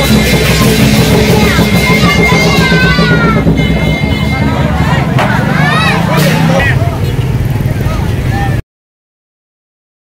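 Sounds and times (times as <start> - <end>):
crowd talking and calling out: 0.0 - 8.6.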